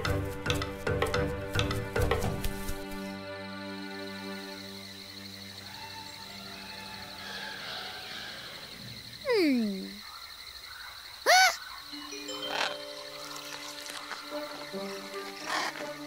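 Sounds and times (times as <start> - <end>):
soft background music: 0.0 - 8.1, 11.9 - 16.0.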